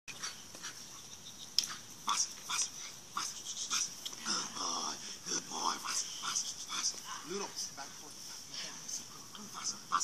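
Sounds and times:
dog panting: 0.1s - 4.3s, 5.6s - 10.0s.

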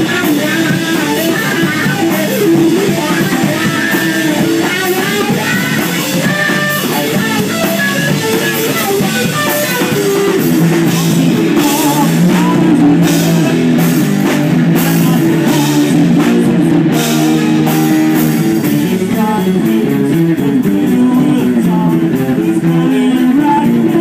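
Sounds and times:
bass guitar: 0.0s - 24.0s
distorted electric guitar: 0.0s - 24.0s
drum kit: 0.0s - 24.0s.

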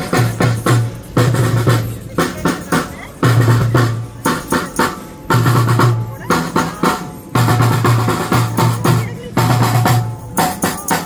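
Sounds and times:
marching snare drums: 0.0s - 11.0s.

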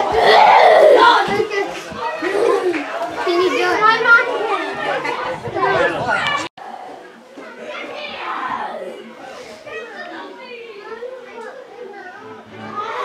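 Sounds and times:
children playing and chattering: 0.0s - 13.0s.

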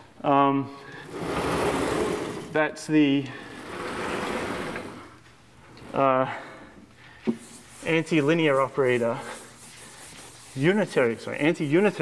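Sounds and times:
chalk scratching on blackboard: 7.3s - 12.0s.

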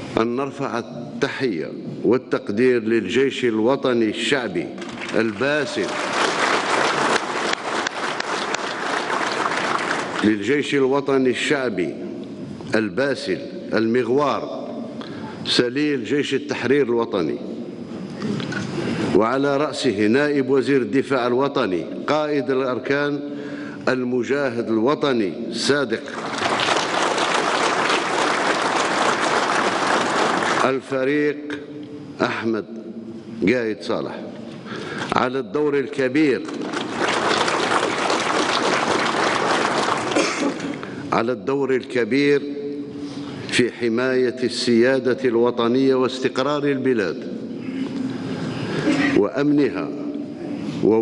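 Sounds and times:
audience applauding: 4.8s - 10.5s, 26.1s - 30.8s, 36.5s - 40.8s.

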